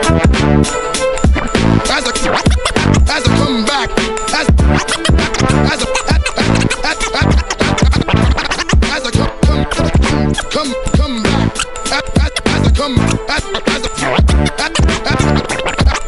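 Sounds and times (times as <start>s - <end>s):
hip-hop beat: 0.0s - 16.0s
vinyl record scratching: 0.0s - 16.0s.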